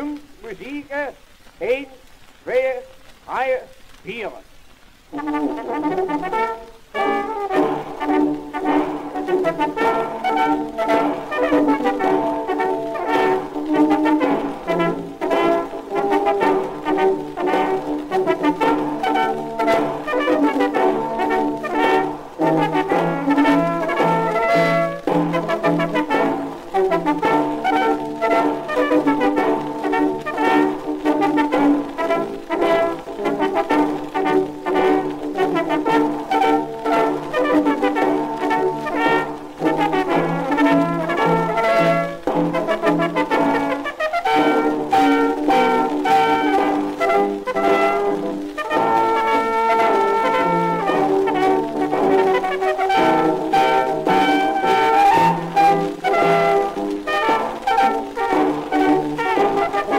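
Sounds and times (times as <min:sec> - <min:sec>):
brass band playing a march: 0:05.1 - 0:59.9.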